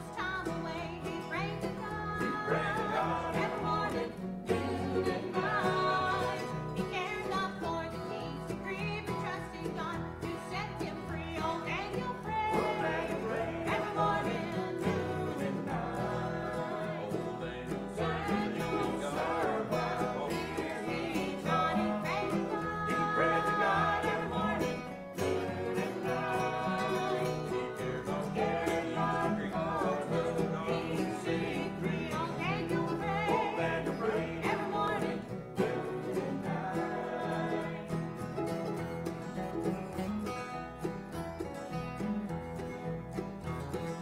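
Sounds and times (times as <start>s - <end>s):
voices singing together: 0.0s - 38.8s
acoustic guitars: 0.0s - 44.0s
mandolin: 0.0s - 44.0s.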